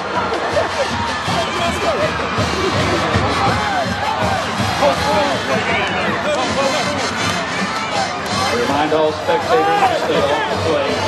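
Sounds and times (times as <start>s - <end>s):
crowd shouting and cheering: 0.0s - 11.0s
music: 0.0s - 11.0s.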